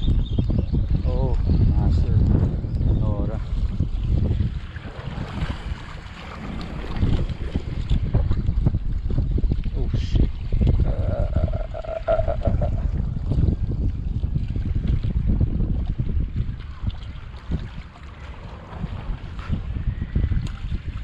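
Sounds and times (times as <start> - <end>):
strong wind buffeting microphone: 0.0 - 21.0
steady tone: 10.8 - 13.0.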